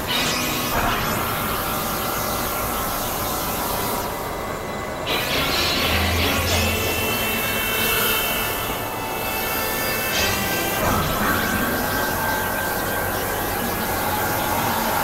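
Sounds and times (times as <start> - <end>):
synthesizer noise and drones: 0.0 - 15.0.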